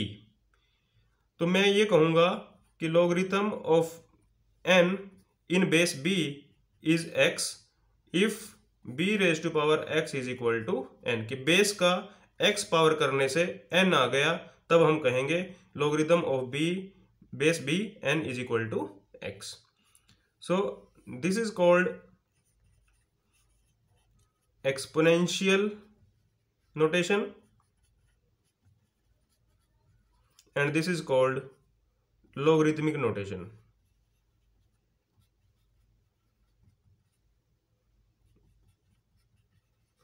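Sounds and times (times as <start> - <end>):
marker pen scratching: 21.9 - 31.8, 33.6 - 40.0.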